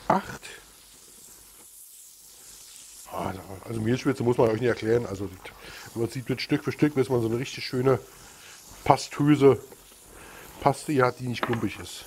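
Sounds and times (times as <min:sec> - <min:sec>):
butter sizzling in a pan: 0:00.0 - 0:12.0.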